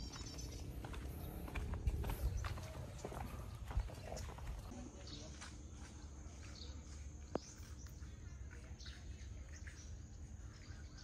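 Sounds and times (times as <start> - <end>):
footsteps on hard path: 0.0 - 11.0
outdoor background noise: 0.0 - 11.0.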